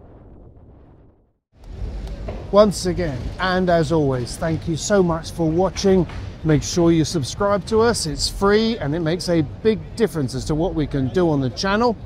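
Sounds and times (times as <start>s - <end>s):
low outdoor rumble: 0.0s - 12.0s
soft wind: 0.0s - 12.0s.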